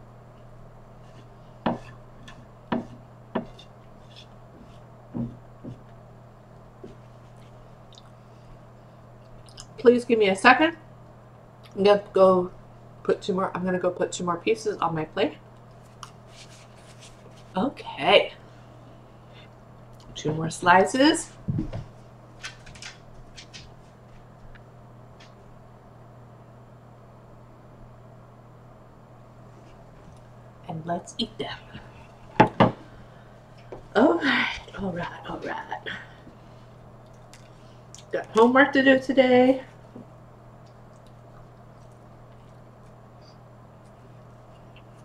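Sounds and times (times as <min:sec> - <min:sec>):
steady low hum: 0:00.0 - 0:45.0
soft rustles and scuffs: 0:15.8 - 0:17.6.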